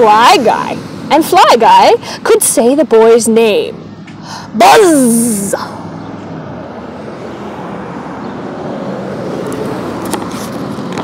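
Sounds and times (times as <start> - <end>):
road traffic noise: 0.0 - 11.0
car passing by: 5.6 - 11.0.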